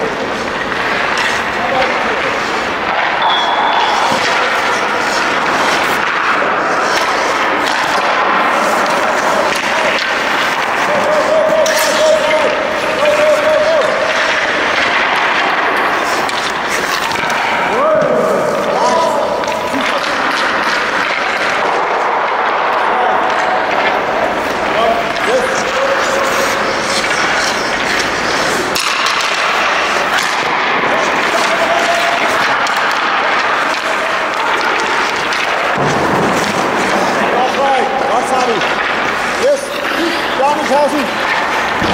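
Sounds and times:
steady wash of rink noise: 0.0 - 41.9.

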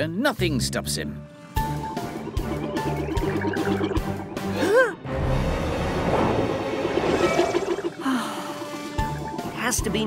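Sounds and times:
bubbling gurgling water: 2.2 - 4.5, 6.4 - 10.0
faint background music: 7.9 - 10.0.

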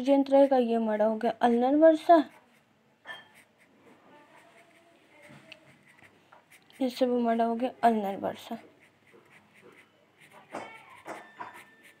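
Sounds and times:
marker scratching on paper: 1.4 - 7.2, 8.3 - 12.0.

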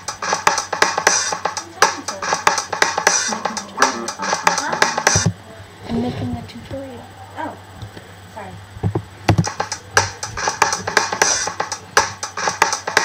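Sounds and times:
electric bass loop: 0.0 - 5.4, 9.3 - 13.0
rock blues drum loop: 0.0 - 5.4, 9.3 - 13.0.

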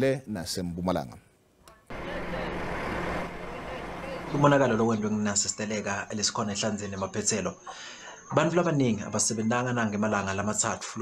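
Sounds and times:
truck engine humming: 1.9 - 5.6
road noise: 1.9 - 5.9.

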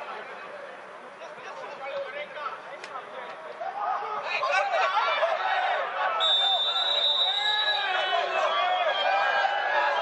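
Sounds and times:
players shouting: 3.6 - 10.0
referee's whistle blast: 6.2 - 9.1.

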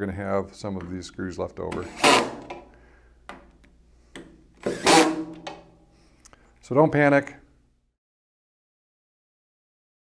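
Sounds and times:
cordless drill driving screws: 1.8 - 2.5, 4.6 - 5.3.

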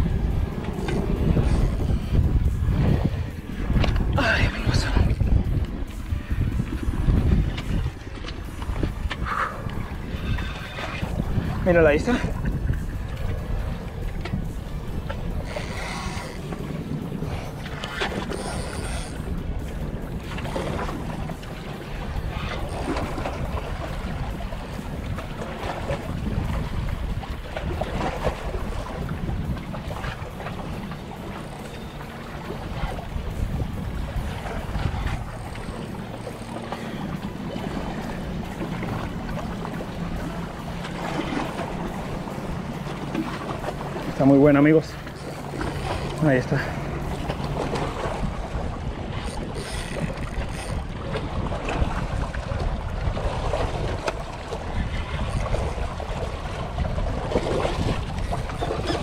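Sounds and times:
wind rushing over microphone: 0.0 - 59.0
waves washing against rocks: 32.7 - 59.0.

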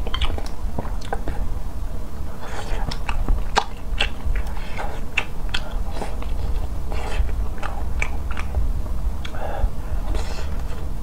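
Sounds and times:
sharp mouth clicks: 0.0 - 1.4, 2.6 - 8.6
close chewing with mouth sounds: 0.0 - 1.6, 2.2 - 10.9.

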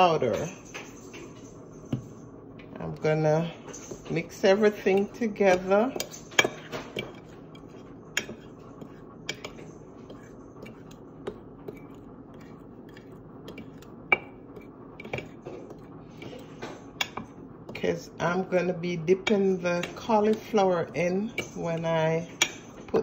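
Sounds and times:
utensil stirring flour: 1.6 - 23.0.

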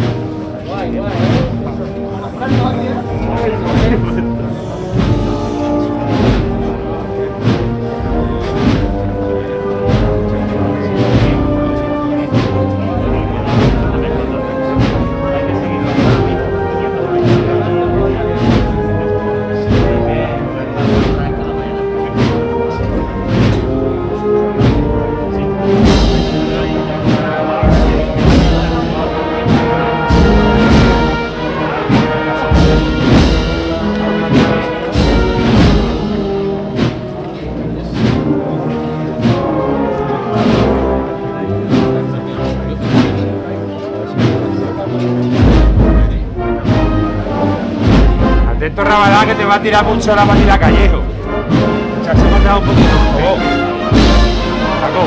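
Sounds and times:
drum beat: 0.0 - 42.2, 42.8 - 43.4, 45.3 - 55.0
brass band playing a march: 0.0 - 55.0.

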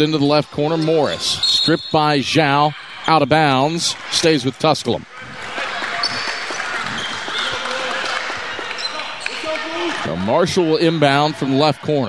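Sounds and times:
crowd chatter: 0.0 - 12.0
players' voices: 0.0 - 12.0.

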